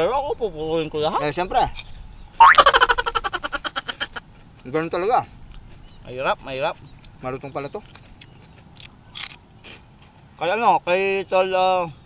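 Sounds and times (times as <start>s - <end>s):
cartoon boing sound effect: 2.4s - 3.4s.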